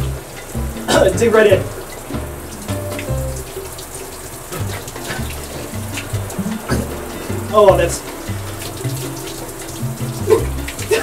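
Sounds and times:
background music with bass line: 0.0 - 3.7, 4.5 - 11.0
shower water running: 0.0 - 11.0.

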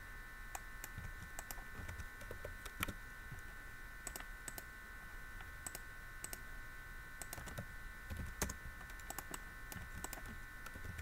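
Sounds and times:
high-pitched electrical hum: 0.0 - 11.0
mouse clicks: 4.0 - 4.7, 7.2 - 11.0.

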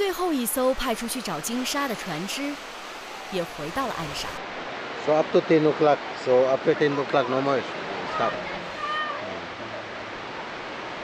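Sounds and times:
sea surf: 0.0 - 11.0.

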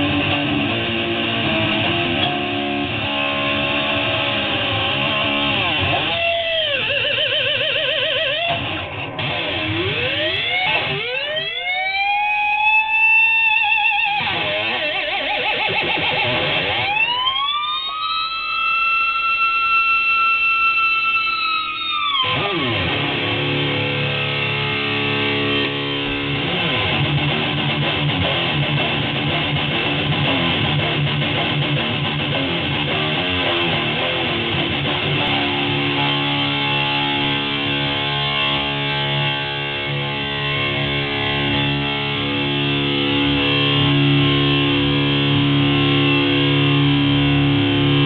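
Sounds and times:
distorted electric guitar: 0.0 - 48.0.

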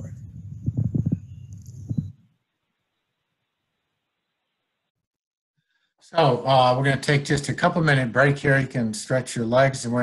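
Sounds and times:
low rumble: 0.0 - 2.1
dull low thumps: 0.0 - 2.2.

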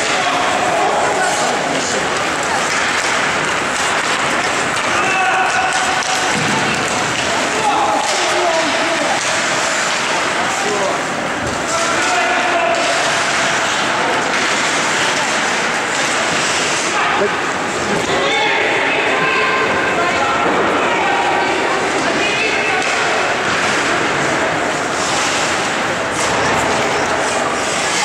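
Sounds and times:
people shouting: 0.0 - 10.8, 11.6 - 15.3, 16.0 - 24.2
hockey sticks and puck knocking: 0.0 - 18.2, 21.8 - 28.0
skates on ice: 0.0 - 28.0.

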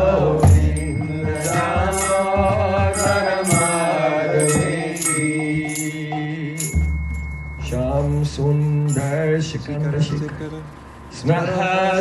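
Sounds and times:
bright percussion strokes: 0.0 - 11.0
steady low drone: 0.0 - 11.5
devotional chanting: 0.0 - 12.0.

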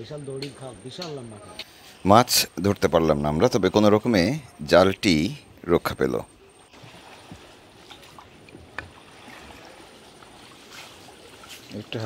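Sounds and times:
paddle swishing in water: 6.7 - 12.0.

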